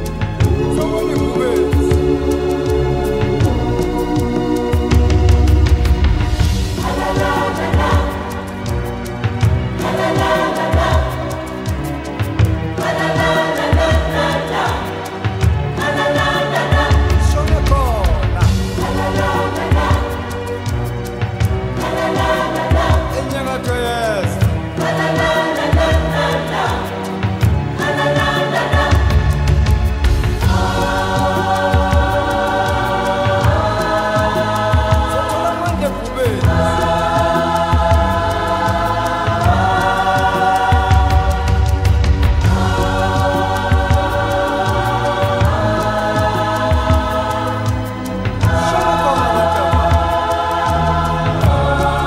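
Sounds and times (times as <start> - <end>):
strong bass: 0.0 - 14.7, 15.3 - 25.0, 27.4 - 52.0
choir singing held chords: 0.0 - 52.0.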